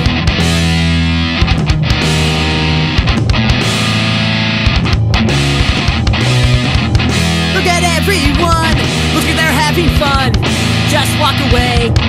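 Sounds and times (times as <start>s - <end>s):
distorted electric guitar: 0.0s - 12.0s
steady drum beat: 0.0s - 12.0s.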